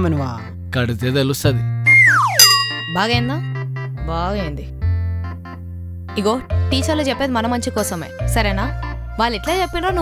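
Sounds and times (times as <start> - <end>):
background music: 0.0 - 10.0
steeply falling pitch glide: 1.9 - 2.8
sudden ringing note: 1.9 - 3.6.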